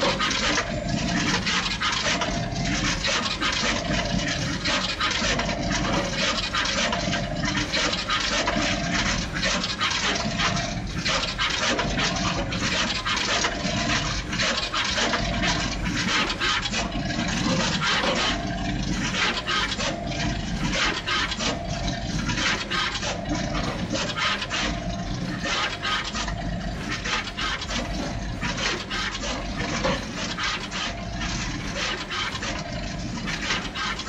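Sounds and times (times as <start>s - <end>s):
fast dense machine clicking: 0.0s - 34.0s
steady machine hum: 0.0s - 34.0s.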